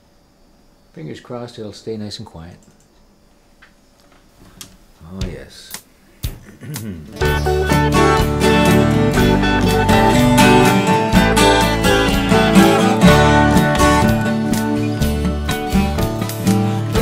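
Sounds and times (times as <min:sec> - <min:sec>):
backing track with bass line: 0:06.2 - 0:17.0
twelve-string acoustic guitar: 0:07.1 - 0:17.0.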